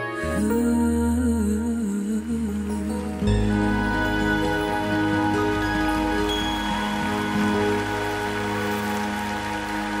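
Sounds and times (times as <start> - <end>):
audience applause: 4.4 - 10.0.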